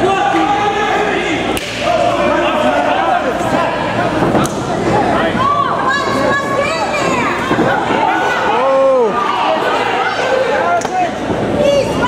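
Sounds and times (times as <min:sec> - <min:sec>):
spectators shouting and yelling: 0:00.0 - 0:12.0.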